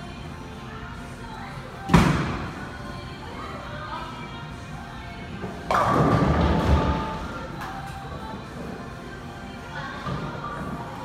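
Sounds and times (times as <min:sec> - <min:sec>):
background music: 0:00.0 - 0:11.0
bowling ball thud and roll: 0:05.6 - 0:07.2.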